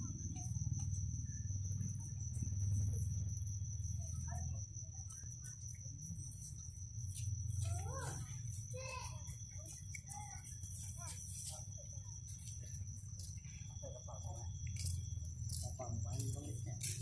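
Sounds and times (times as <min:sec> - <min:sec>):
high-pitched insect trill: 0:00.0 - 0:17.0.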